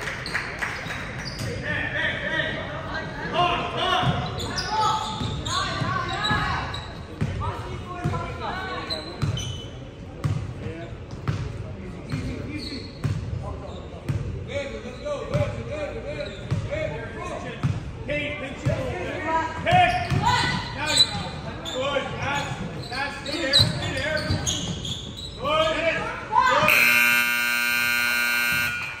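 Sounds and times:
scoreboard buzzer blare: 26.6s - 29.0s.

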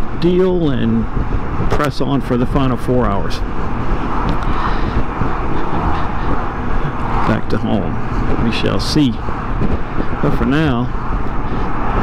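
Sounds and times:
motorcycle road noise: 0.0s - 12.0s
wind rush: 0.0s - 12.0s.

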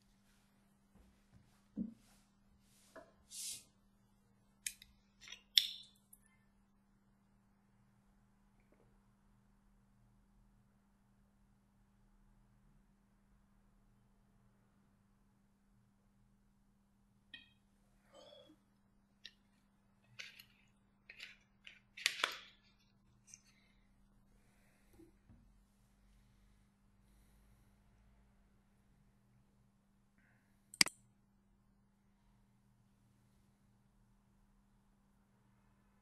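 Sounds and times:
small hard objects clicking and scraping: 20.0s - 22.6s.

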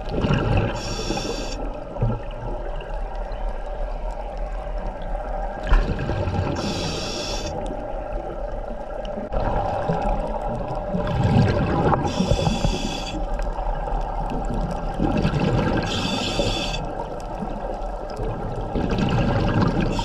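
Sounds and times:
exhaled air bubbling: 0.0s - 20.0s
faint steady hum: 0.0s - 20.0s
scuba regulator hissing inhalation: 0.8s - 1.6s, 6.6s - 7.6s, 12.0s - 13.3s, 15.8s - 16.9s.

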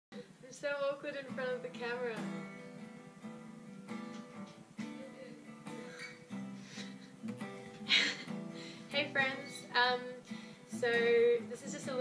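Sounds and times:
acoustic guitar strumming: 0.9s - 12.0s.

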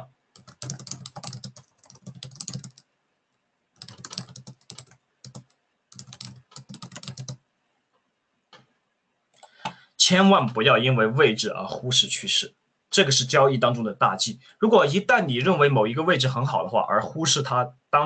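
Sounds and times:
typing on computer keyboard: 0.4s - 2.8s, 3.8s - 7.4s.

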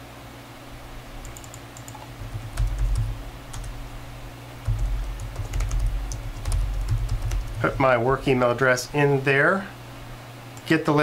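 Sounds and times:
typing on computer keyboard: 1.2s - 3.8s, 4.6s - 8.0s.

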